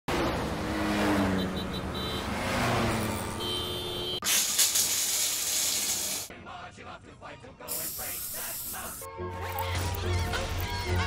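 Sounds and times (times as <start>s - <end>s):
water spraying from shower head: 4.2s - 6.3s, 7.7s - 9.1s.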